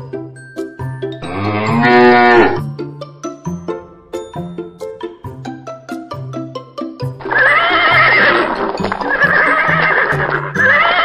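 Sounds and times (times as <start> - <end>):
light plucked background tune: 0.0 - 11.0
cow mooing: 1.2 - 2.6.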